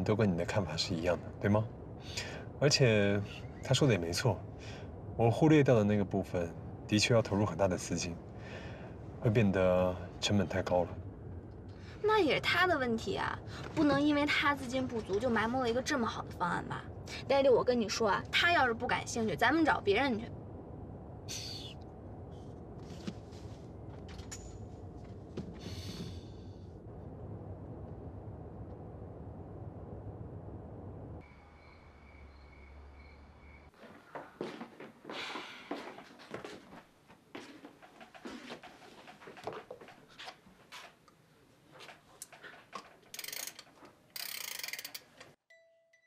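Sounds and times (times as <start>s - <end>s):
music box ratchet clicking: 43.1s - 45.1s.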